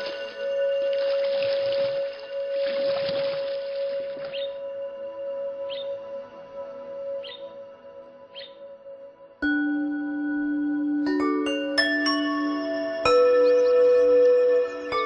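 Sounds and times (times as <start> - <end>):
ambient drone music: 0.0 - 15.0
birdlike chirps: 4.2 - 4.7, 5.7 - 6.0, 7.2 - 7.6, 8.3 - 8.6, 12.5 - 15.0.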